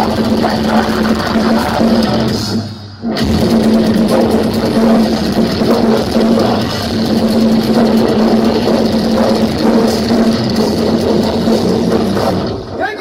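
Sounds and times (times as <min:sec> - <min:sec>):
distorted electric guitars: 0:00.0 - 0:13.0
fast dense drumming: 0:00.0 - 0:13.0.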